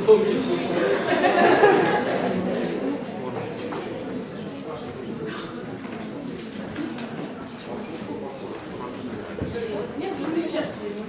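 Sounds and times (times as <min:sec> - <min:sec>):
murmur of people talking quietly: 0:00.0 - 0:11.0.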